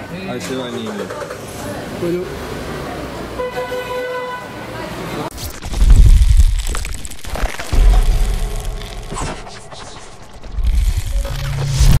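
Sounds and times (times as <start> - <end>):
low rumble: 5.3 - 12.0
deep bass boom: 5.4 - 12.0.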